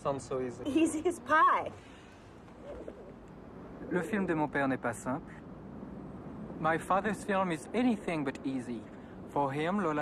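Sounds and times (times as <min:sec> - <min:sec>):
faint low bird cooing: 0:02.5 - 0:03.3.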